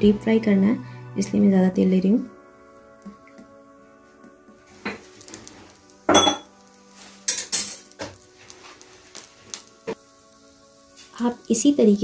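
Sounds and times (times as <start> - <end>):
metal kitchenware clinking: 6.1 - 6.5.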